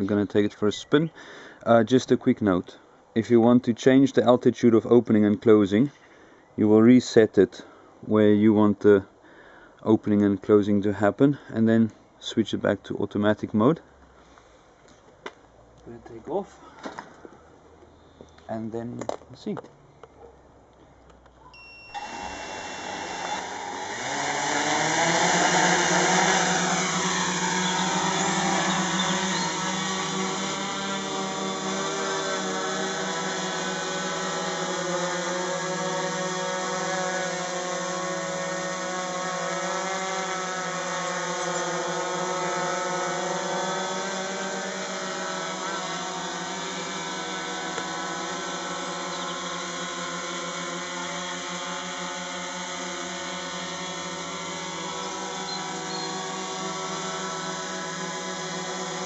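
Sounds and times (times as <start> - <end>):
quadcopter motors buzzing: 21.9 - 59.0.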